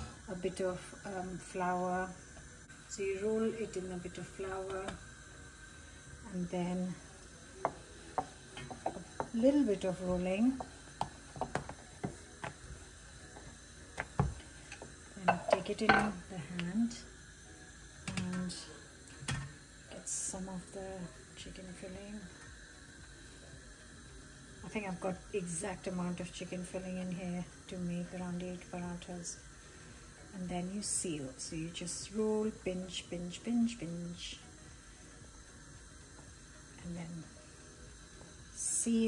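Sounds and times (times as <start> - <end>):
faint hiss with low hum: 0.0 - 39.0.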